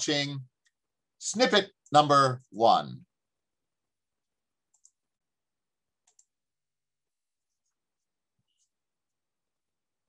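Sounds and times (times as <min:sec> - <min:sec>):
computer mouse double-clicks: 0:06.0 - 0:06.3.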